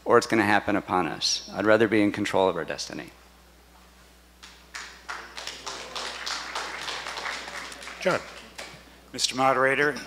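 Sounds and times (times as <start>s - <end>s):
audience applause: 4.7s - 8.9s.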